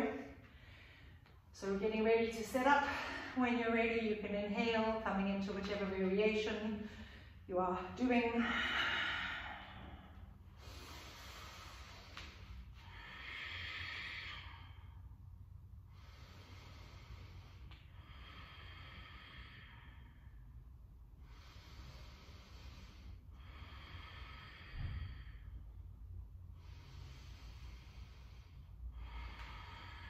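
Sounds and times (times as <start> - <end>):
low room hum: 0.0 - 30.0
woman breathing slowly: 0.0 - 30.0.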